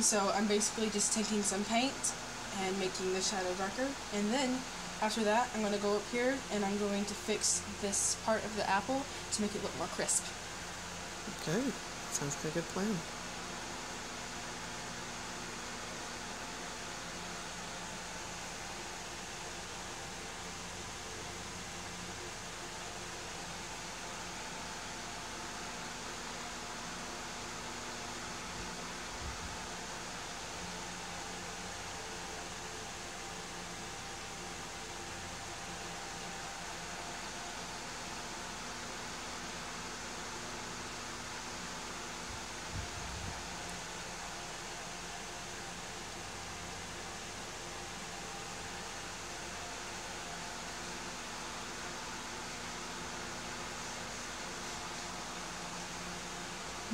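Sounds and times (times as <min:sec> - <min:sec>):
room hiss: 0:00.0 - 0:56.9.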